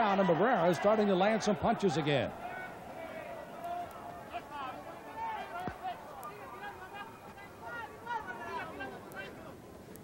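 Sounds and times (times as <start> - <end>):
crowd shouting: 0.0 - 9.5.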